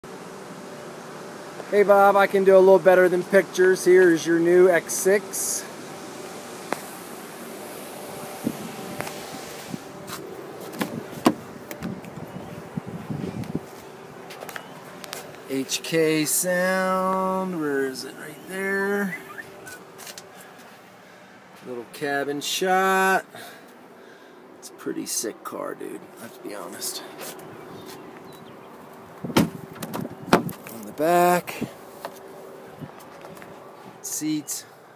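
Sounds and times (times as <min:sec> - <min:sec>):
faint hum and hiss: 0:00.1 - 0:34.9
car door clicks and knocks: 0:10.8 - 0:11.9, 0:29.3 - 0:30.6.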